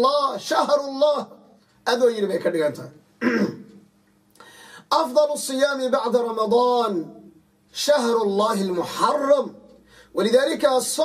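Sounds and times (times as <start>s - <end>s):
man clearing his throat: 3.2s - 3.8s.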